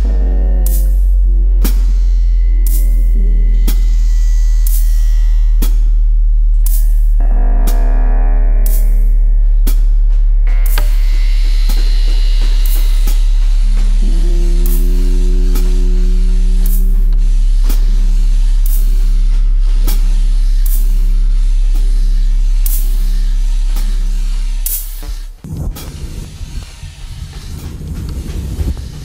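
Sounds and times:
sustained low tone: 0.0s - 26.0s
deep bass drone: 0.0s - 29.0s.

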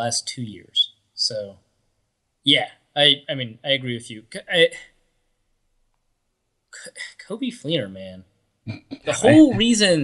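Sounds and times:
man speaking: 0.0s - 1.6s, 2.5s - 4.9s, 6.8s - 10.0s.

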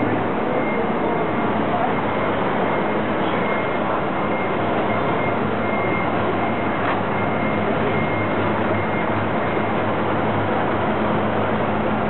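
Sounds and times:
street traffic: 0.0s - 12.0s
truck engine running: 0.0s - 12.0s.

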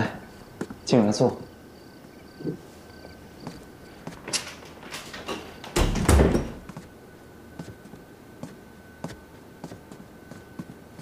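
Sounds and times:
knocks and rustles: 3.4s - 6.9s
wooden door shutting: 4.2s - 6.8s.

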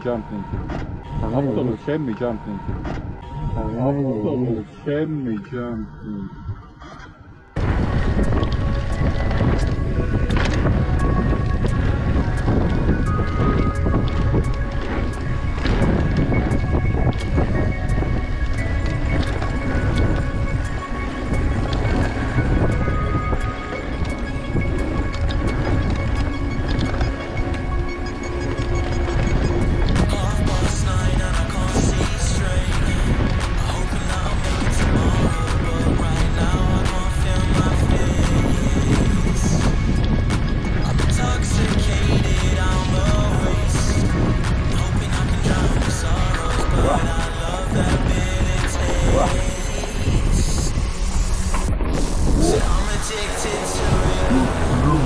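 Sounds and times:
background music: 0.0s - 55.0s
wind buffeting microphone: 0.0s - 55.0s
mountain bike rattling: 7.6s - 55.0s.

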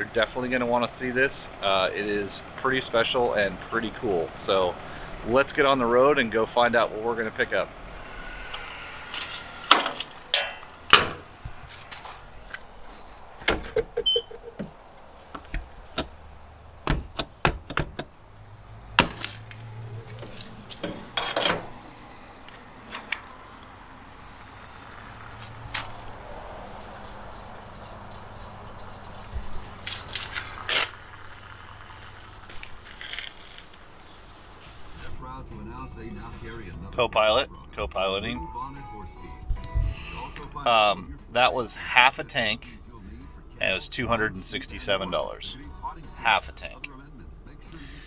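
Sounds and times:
fuel pump hum and hiss: 0.0s - 38.1s, 39.6s - 48.0s.

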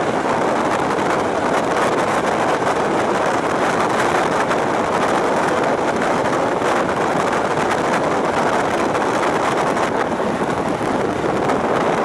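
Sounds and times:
train running at speed: 0.0s - 12.0s
wind buffeting microphone: 0.0s - 12.0s
wind rushing: 0.0s - 12.0s.

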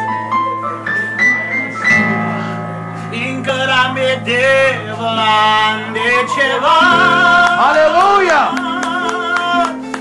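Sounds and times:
acoustic guitar: 0.0s - 10.0s
electronic keyboard: 0.0s - 10.0s.

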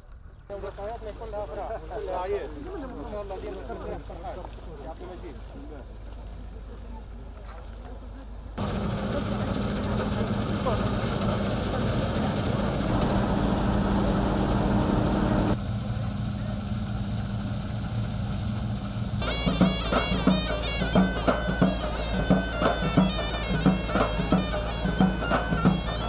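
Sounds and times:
combine harvester engine drone: 8.6s - 26.0s.

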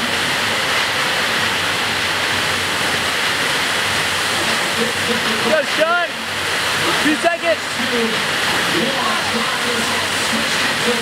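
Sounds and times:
rushing water torrent: 0.0s - 11.0s.

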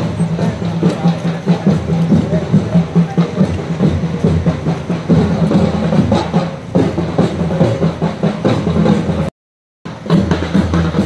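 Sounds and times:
drums beaten fast: 0.0s - 9.3s, 9.9s - 11.0s.

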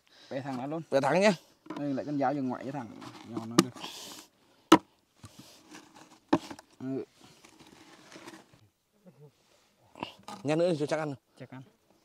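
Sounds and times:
rope rustling on plastic bucket: 2.7s - 3.9s, 5.3s - 8.6s.

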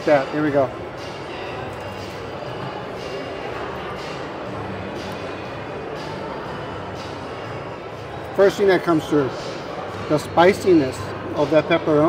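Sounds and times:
faint music: 0.0s - 12.0s
murmur of distant voices: 0.0s - 12.0s.

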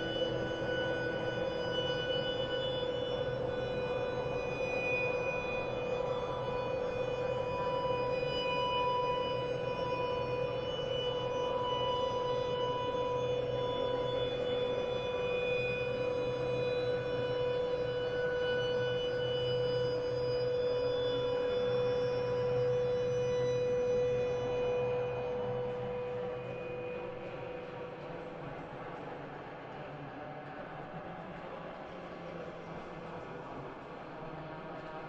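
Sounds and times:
ambient drone music: 0.0s - 29.1s.

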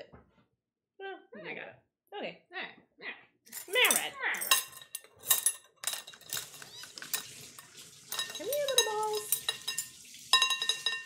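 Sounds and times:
clinks and scrapes on glass bowl: 3.7s - 11.0s.

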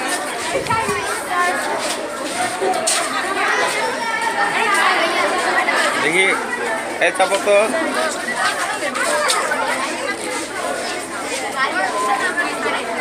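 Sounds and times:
chatter of overlapping voices: 0.0s - 13.0s.

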